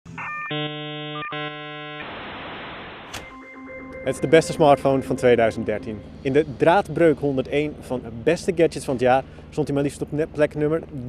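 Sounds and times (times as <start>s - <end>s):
sharp click: 3.1s - 3.4s
held synth chord: 3.2s - 8.5s.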